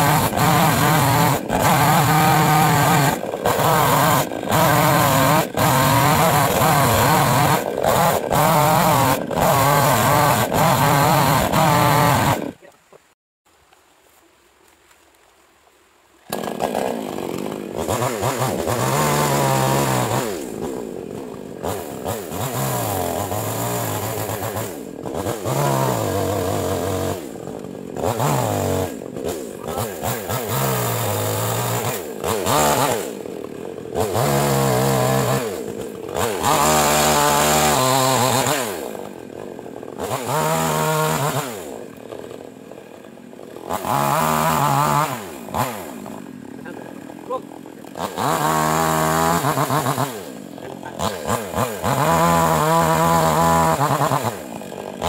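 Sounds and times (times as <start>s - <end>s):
chainsaw idling: 0.0s - 12.6s, 16.3s - 55.0s
mini chainsaw revving: 0.0s - 12.7s, 16.3s - 55.0s.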